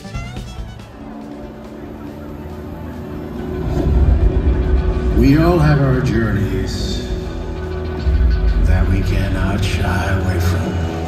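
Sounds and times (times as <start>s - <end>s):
faint music: 0.0s - 11.0s
deep low rumble over speakers: 2.6s - 11.0s.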